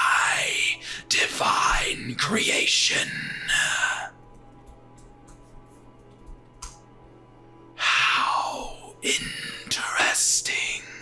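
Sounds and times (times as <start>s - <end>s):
man whispering: 0.0s - 4.2s, 7.8s - 11.0s
faint ambient music: 0.0s - 11.0s.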